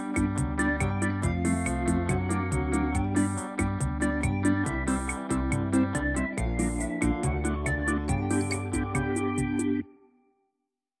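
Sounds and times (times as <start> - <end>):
instrumental music with steady beat: 0.0 - 10.0.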